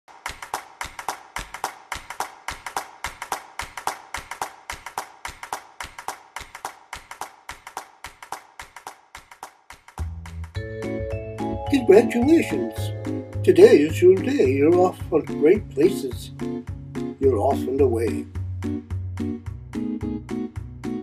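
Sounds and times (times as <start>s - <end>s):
rhythmic handclaps and taps: 0.1s - 11.0s, 11.8s - 21.0s.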